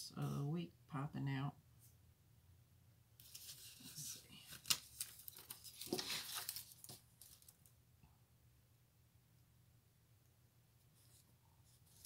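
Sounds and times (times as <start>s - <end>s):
paper pages rustling and sliding: 3.2s - 7.6s.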